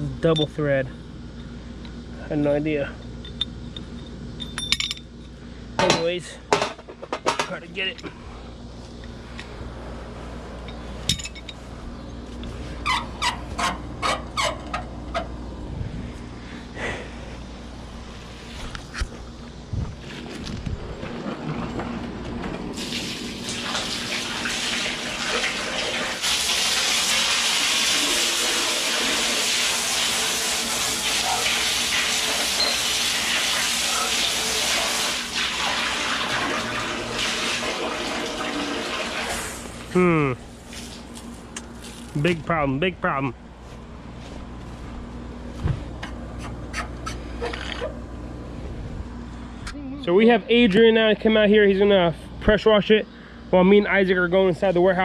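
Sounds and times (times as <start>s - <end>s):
hose water spraying in metal tank: 22.7s - 39.9s.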